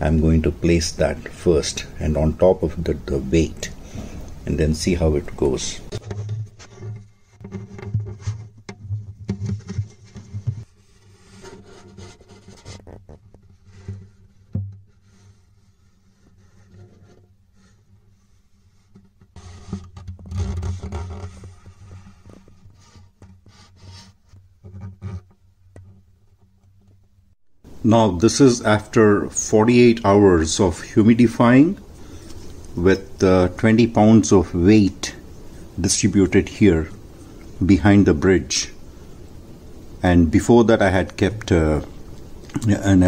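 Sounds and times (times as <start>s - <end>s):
probe scraping inside guitar body: 1.2s - 27.0s, 31.7s - 37.6s.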